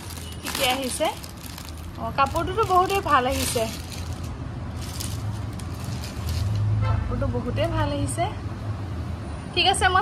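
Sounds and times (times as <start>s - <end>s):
plastic and cloth rustling: 0.0s - 6.7s.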